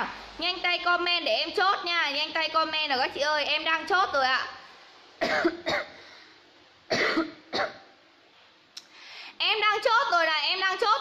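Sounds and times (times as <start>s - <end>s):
person coughing: 5.2s - 6.0s, 6.9s - 7.9s.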